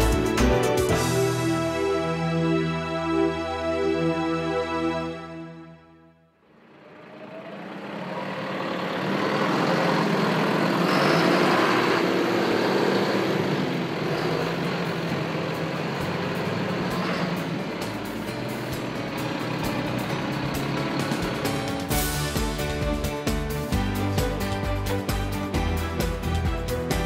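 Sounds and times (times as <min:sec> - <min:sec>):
tractor diesel engine running: 0:00.0 - 0:04.0, 0:06.5 - 0:27.0
background music: 0:00.0 - 0:06.4, 0:15.5 - 0:27.0.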